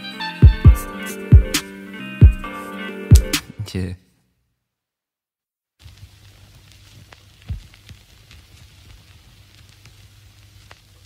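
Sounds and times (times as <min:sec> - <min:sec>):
crackling hiss: 0:05.8 - 0:11.0.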